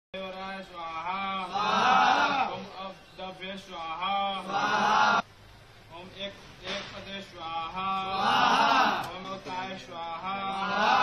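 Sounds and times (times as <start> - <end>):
men chanting: 1.0 - 3.0, 3.8 - 5.2, 7.7 - 9.6, 10.2 - 11.0.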